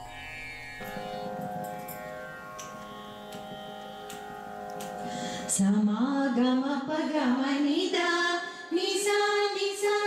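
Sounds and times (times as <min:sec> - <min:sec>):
plucked drone instrument: 0:00.0 - 0:05.7
person singing devotional song: 0:02.6 - 0:10.0.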